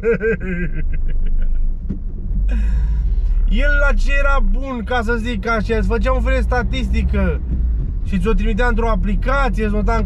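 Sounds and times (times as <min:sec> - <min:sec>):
man laughing: 0:00.0 - 0:01.7
low vehicle rumble: 0:00.0 - 0:10.0.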